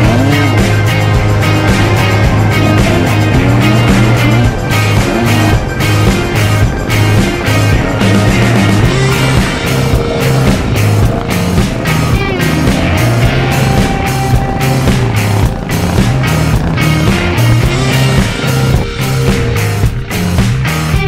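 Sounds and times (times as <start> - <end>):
bass line: 0.0 - 21.0
driving drum beat: 0.0 - 21.0
electric guitar: 0.0 - 21.0.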